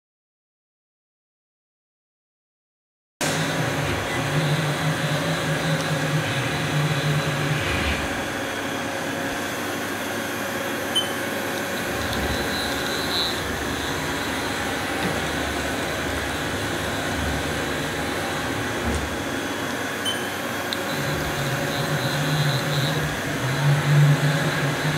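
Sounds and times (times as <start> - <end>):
machine mechanical hum with tones: 3.2 - 24.9.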